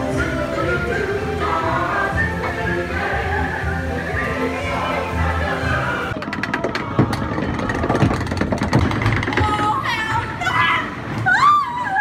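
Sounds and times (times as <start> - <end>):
choir-style ride music: 0.0 - 6.2.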